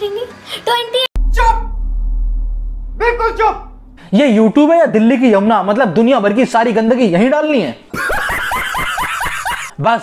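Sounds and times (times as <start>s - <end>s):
man laughing hard: 7.9s - 9.8s.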